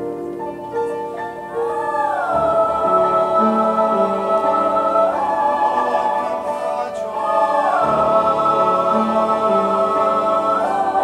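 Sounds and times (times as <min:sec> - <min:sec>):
choir singing: 0:00.7 - 0:11.0.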